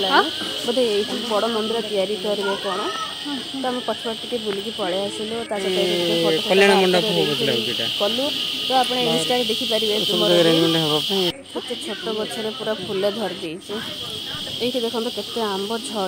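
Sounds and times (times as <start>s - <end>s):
high-pitched insect buzz: 0.0s - 16.0s
people talking: 0.0s - 16.0s.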